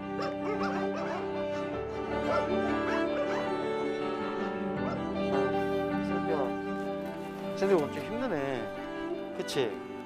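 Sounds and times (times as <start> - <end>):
dogs barking and yipping: 0.0 - 5.0
background music: 0.0 - 10.0.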